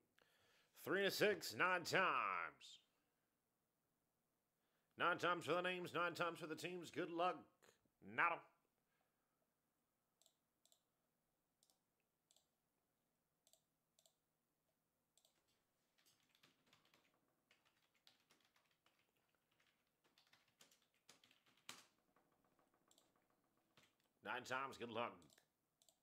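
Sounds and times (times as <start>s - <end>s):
typing on computer keyboard: 15.2s - 24.2s.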